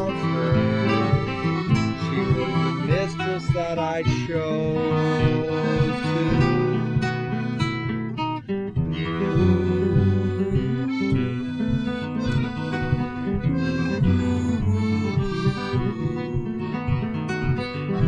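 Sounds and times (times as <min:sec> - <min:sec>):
acoustic guitar: 0:00.0 - 0:18.0
piano accordion: 0:00.0 - 0:18.0.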